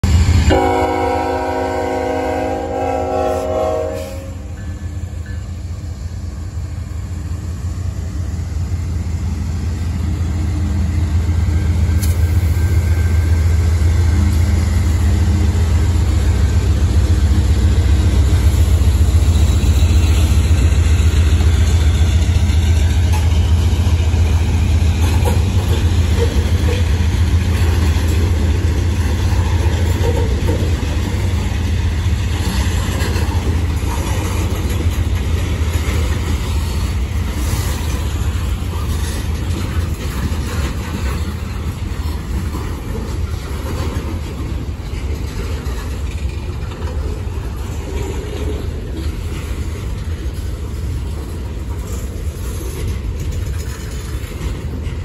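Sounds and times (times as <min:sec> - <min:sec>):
freight train rolling past: 0:00.0 - 0:55.0
locomotive horn: 0:00.4 - 0:04.6.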